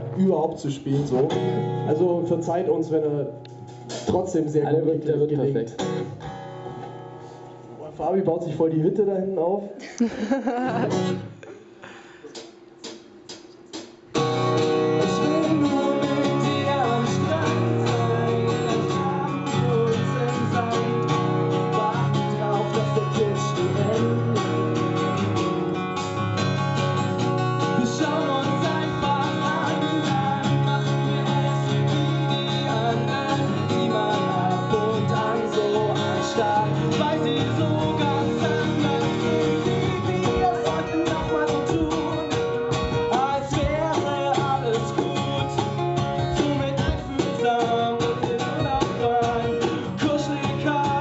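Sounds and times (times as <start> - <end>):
acoustic guitars strumming: 0.0 - 7.9, 10.2 - 51.0
cajon: 12.3 - 51.0.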